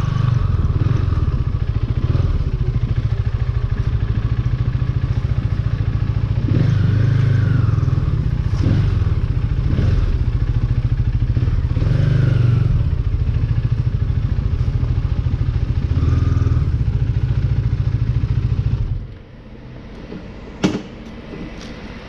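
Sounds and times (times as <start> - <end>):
motorcycle engine at low speed: 0.0 - 22.0.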